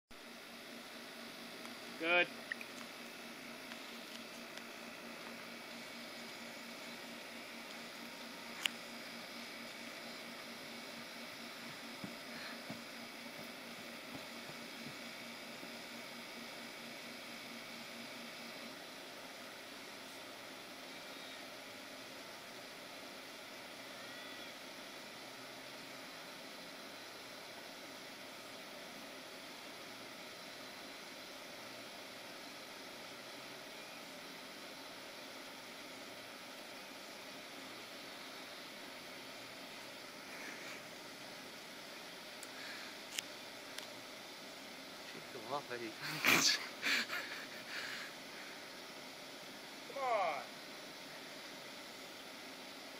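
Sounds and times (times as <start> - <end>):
faint outdoor hiss: 0.2 - 52.9.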